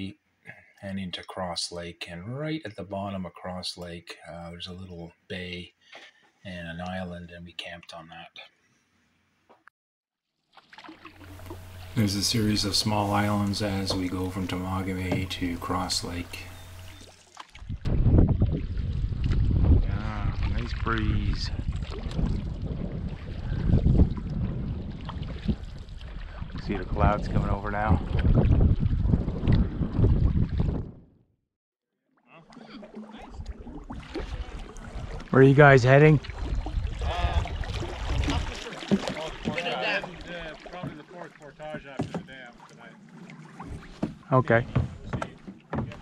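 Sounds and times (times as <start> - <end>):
canoe paddle strokes: 10.4 - 30.6, 32.4 - 46.0
water moving along hull: 10.4 - 31.0, 32.2 - 46.0
wind rumbling on microphone: 17.6 - 31.2, 36.2 - 38.5.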